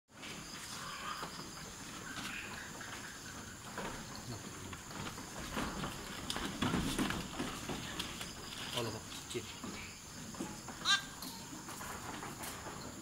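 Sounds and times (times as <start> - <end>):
faint rustling and shuffling: 0.1 - 13.0.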